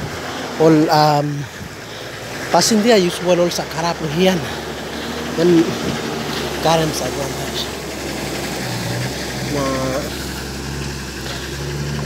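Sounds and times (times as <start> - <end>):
pickup truck engine running: 0.0 - 12.0
person's voice: 0.6 - 1.6, 2.5 - 4.6, 5.3 - 7.8, 9.5 - 10.2.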